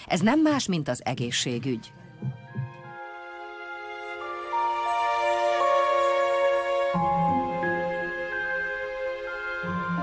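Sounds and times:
soft background music: 0.2s - 10.0s
heartbeat thumps: 2.2s - 2.9s.

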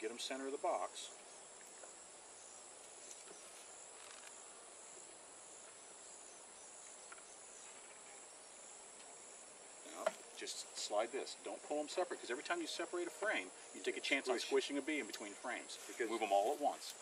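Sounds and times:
insects chirring: 0.0s - 17.0s.

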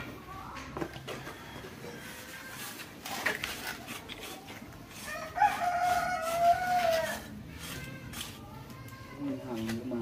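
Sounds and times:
rooster crowing: 5.0s - 7.3s.

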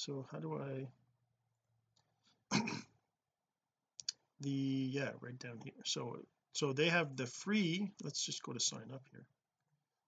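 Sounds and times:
man coughing: 2.5s - 3.0s
faint mouse clicks: 4.0s - 4.2s.

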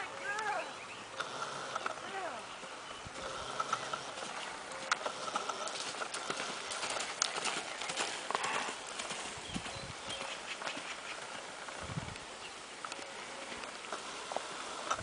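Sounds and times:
hoofbeats on dry dirt: 3.2s - 12.1s.

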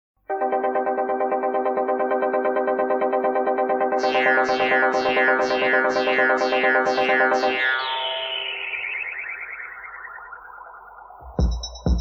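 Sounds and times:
synthesizer chord pulsing: 0.2s - 11.2s.

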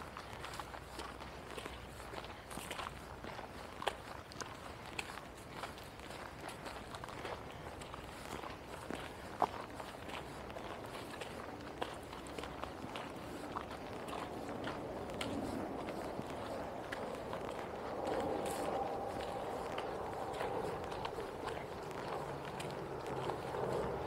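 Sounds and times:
footsteps on dry leaves: 0.0s - 24.0s.

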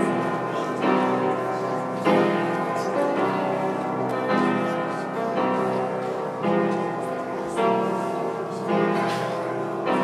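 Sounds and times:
church bells pealing: 0.0s - 10.0s.

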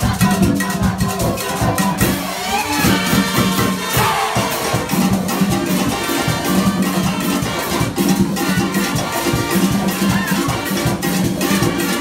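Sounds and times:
drums and shakers beat: 0.0s - 12.0s
percussion-driven latin band: 0.0s - 12.0s.

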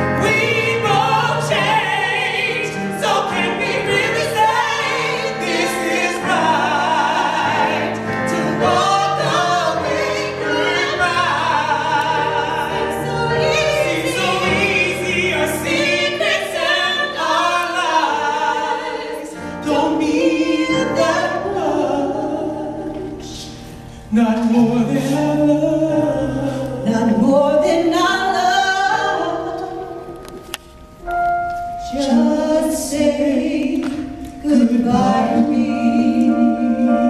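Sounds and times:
woman and man singing soul: 24.1s - 29.4s.

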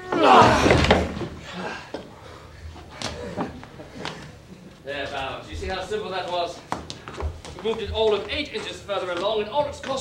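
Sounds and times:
group heave shout: 0.0s - 0.9s
men straining: 0.0s - 4.6s.

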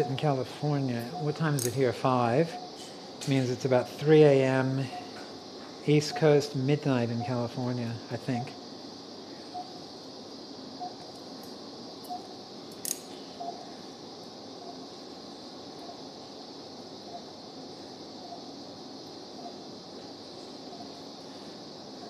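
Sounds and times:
steady high hiss: 0.0s - 22.0s
monitor beeps: 6.0s - 6.4s
metallic click: 12.1s - 13.2s.

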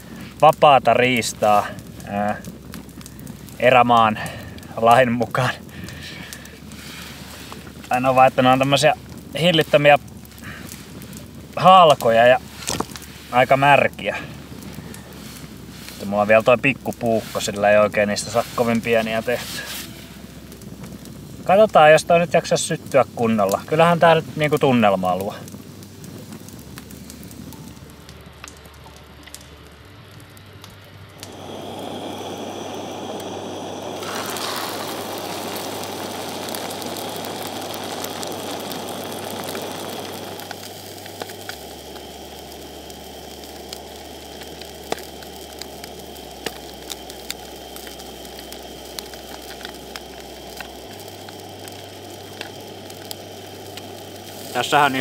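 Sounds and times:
campfire crackling and hissing: 0.0s - 55.0s
loud steady hiss: 0.0s - 55.0s.

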